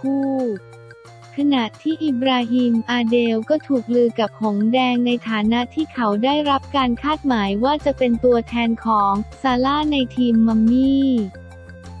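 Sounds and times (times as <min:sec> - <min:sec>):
quiet background music with bass: 0:00.0 - 0:12.0.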